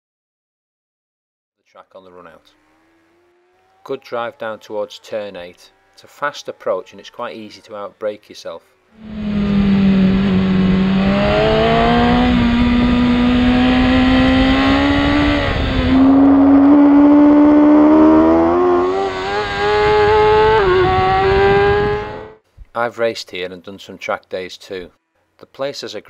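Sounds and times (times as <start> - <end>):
motorcycle engine revving high: 2.1 - 8.0, 8.8 - 22.4.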